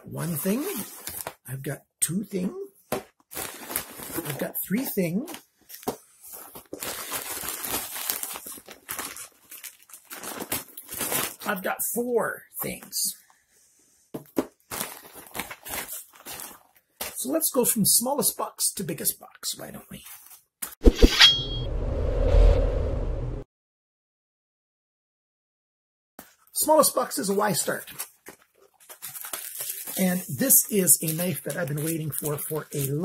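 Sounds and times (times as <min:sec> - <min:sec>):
packaging crinkling and rustling: 0:03.0 - 0:04.5, 0:05.3 - 0:11.5, 0:14.4 - 0:17.2, 0:27.4 - 0:33.0
loud rumbling whoosh: 0:20.9 - 0:23.4
short metallic ring: 0:21.1 - 0:21.7.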